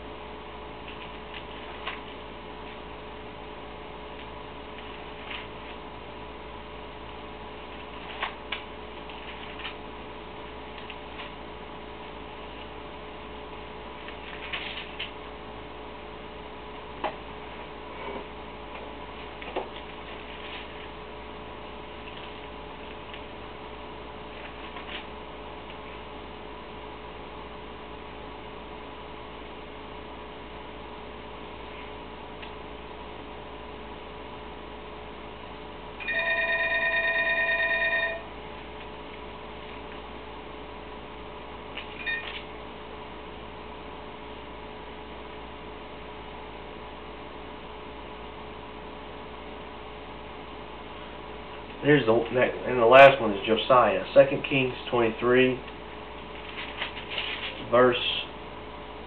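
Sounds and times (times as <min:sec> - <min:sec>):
room hiss and hum: 0:00.0 - 0:59.0
thin pages rustling: 0:04.2 - 0:05.8, 0:07.7 - 0:09.8, 0:14.0 - 0:15.2, 0:19.2 - 0:21.0, 0:24.3 - 0:25.1, 0:56.2 - 0:57.7
electronic telephone ringing: 0:36.0 - 0:38.3, 0:42.0 - 0:42.4.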